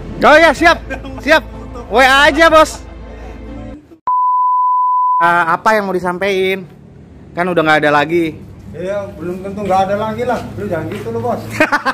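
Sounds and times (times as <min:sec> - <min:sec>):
high-pitched test tone beep: 0:04.1 - 0:05.2.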